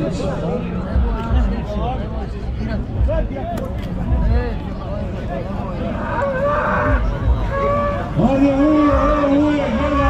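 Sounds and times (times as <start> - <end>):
crowd murmur: 0.0 - 10.0
bull bellowing: 5.9 - 10.0.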